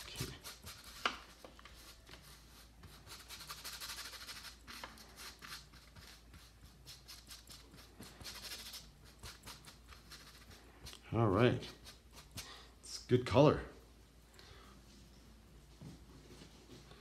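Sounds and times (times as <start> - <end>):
paintbrush scrubbing canvas: 0.0 - 12.6.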